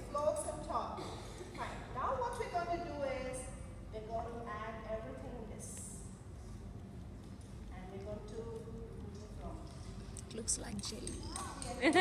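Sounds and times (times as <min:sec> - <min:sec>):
low room rumble: 0:00.0 - 0:12.0
woman's voice: 0:10.2 - 0:12.0.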